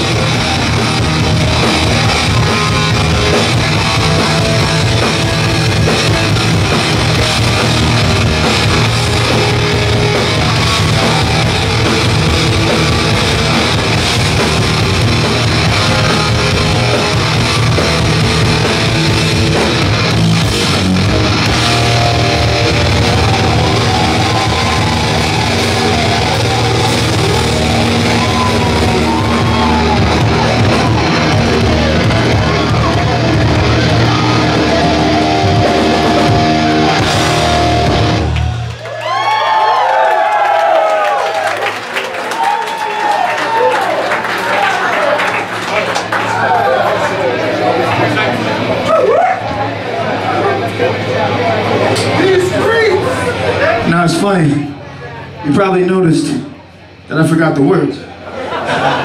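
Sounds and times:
electric guitar: 0:00.0 - 0:41.8
punk band playing live: 0:00.0 - 0:57.1, 0:58.1 - 0:59.0.

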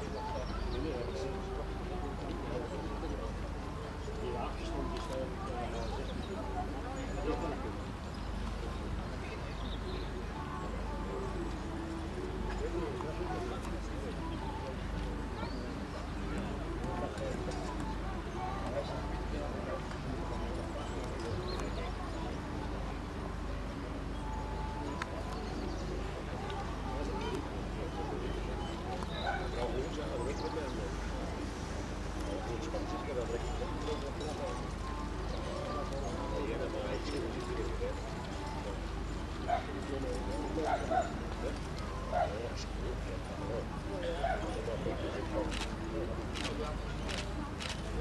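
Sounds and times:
murmur of voices: 0:00.0 - 0:48.0.

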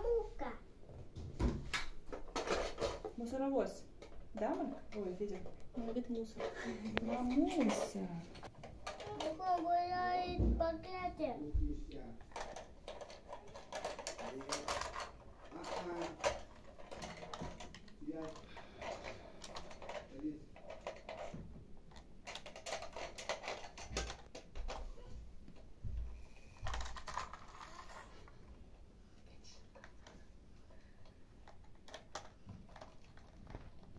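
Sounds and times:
child murmuring: 0:00.0 - 0:00.7, 0:09.0 - 0:11.4
plastic toys clicking and clattering: 0:01.7 - 0:09.8, 0:12.2 - 0:25.7, 0:26.4 - 0:28.4, 0:29.6 - 0:33.9.

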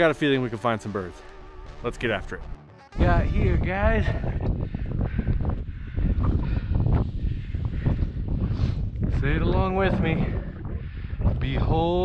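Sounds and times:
strong wind buffeting microphone: 0:03.0 - 0:12.0.

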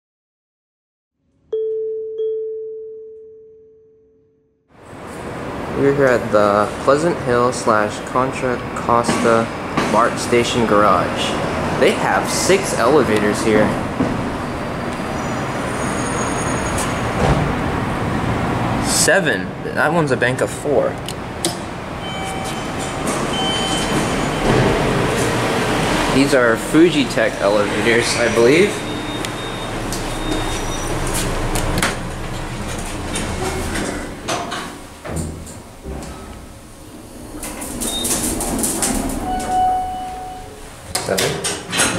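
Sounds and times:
elevator mechanical rumble: 0:21.2 - 0:40.9
elevator doors sliding open: 0:21.2 - 0:41.9.

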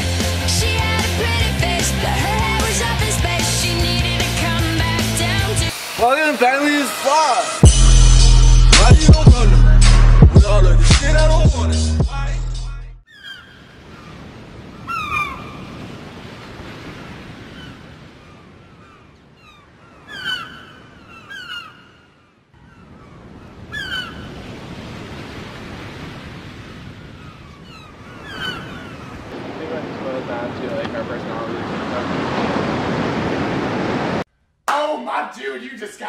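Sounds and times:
hip-hop music: 0:00.2 - 0:13.0
falling bird calls: 0:13.1 - 0:24.9, 0:26.5 - 0:33.0
ocean surf washing on beach: 0:13.8 - 0:19.0, 0:23.4 - 0:34.3.

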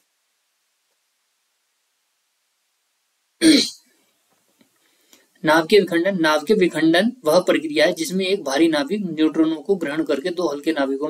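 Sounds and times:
man clearing throat: 0:03.4 - 0:03.8.

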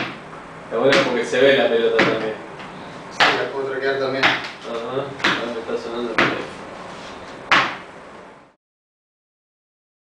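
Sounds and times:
sharp knock: 0:00.0 - 0:00.2, 0:02.0 - 0:02.3, 0:03.2 - 0:03.4, 0:04.2 - 0:04.6, 0:05.2 - 0:05.5, 0:06.2 - 0:06.5, 0:07.5 - 0:07.9.

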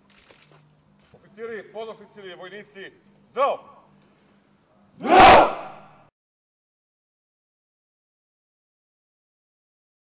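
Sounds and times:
soldiers shouting in unison: 0:05.0 - 0:05.9.

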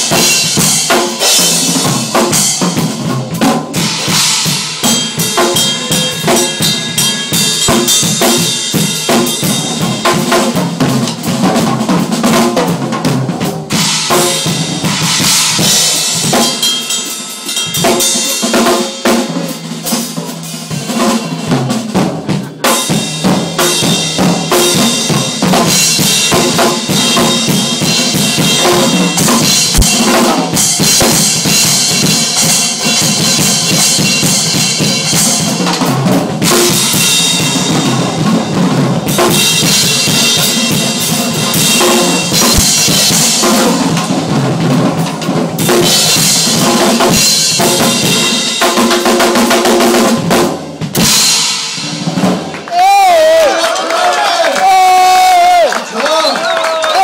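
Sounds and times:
drum kit solo: 0:00.0 - 0:53.5, 0:54.6 - 0:55.7.

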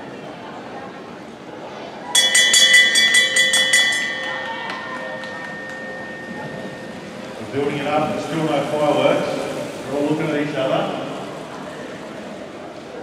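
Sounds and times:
lap bell ringing rapidly: 0:02.2 - 0:09.2.

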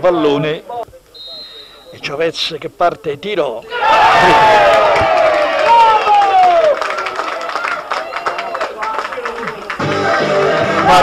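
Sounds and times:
people shouting: 0:03.7 - 0:07.2
people clapping: 0:04.2 - 0:11.0
music: 0:09.7 - 0:11.0.

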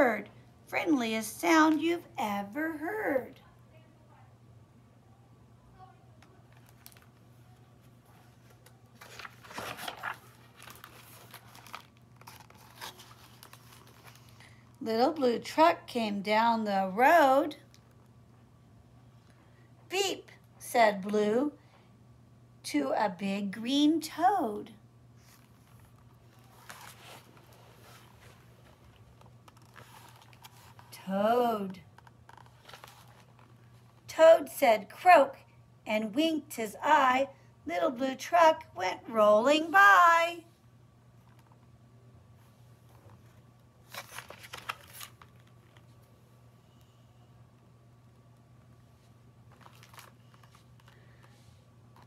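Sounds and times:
low room hum: 0:00.0 - 0:52.0
paper pages rustling: 0:08.0 - 0:14.6, 0:25.2 - 0:30.9, 0:31.9 - 0:34.0, 0:42.4 - 0:46.1, 0:49.0 - 0:52.0.

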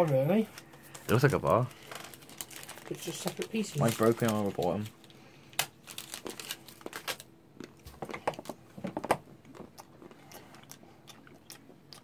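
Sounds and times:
person chewing chocolate crunches: 0:05.0 - 0:12.0.

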